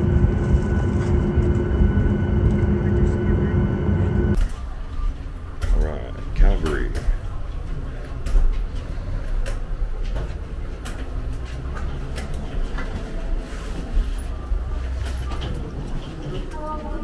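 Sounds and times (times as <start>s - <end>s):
steady low rumble: 0.0s - 6.4s.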